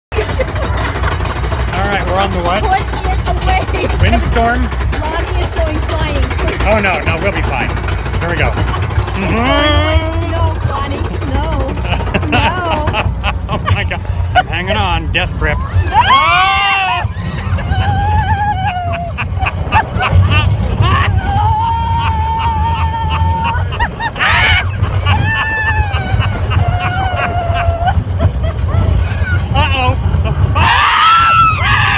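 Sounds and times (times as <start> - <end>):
steady low rumble: 0.1 - 31.9
voices: 0.2 - 31.9
riders screaming: 15.4 - 31.9
shrieks and laughs: 15.6 - 31.9.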